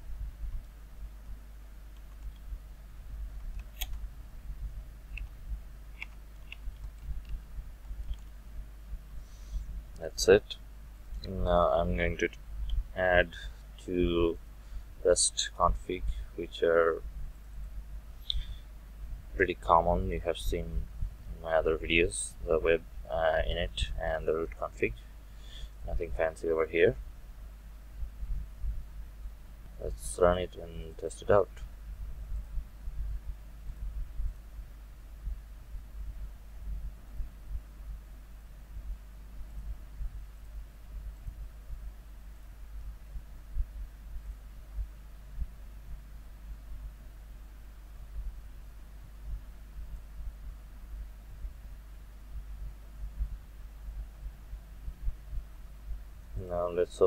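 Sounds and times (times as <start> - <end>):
low steady hum: 0.0 - 57.0
keyboard keys clicking: 1.9 - 2.5, 6.0 - 8.3.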